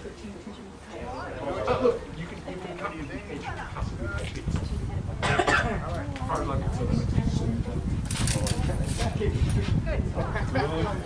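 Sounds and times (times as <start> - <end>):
wind rumble on microphone: 3.0 - 11.0
person coughing: 5.2 - 5.8.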